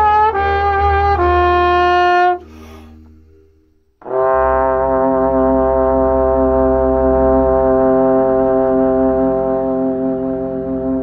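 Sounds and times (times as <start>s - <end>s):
trombone holding long note: 0.0s - 3.0s, 4.0s - 11.0s
piano accompaniment: 0.0s - 11.0s.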